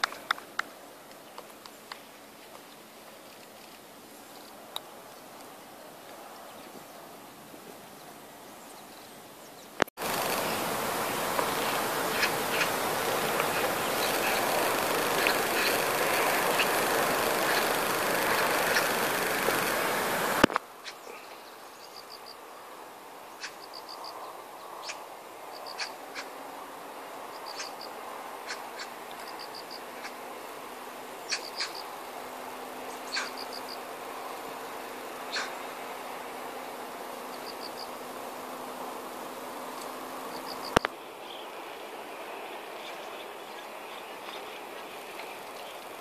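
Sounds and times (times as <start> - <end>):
loud steady rushing noise: 10.0 - 21.3.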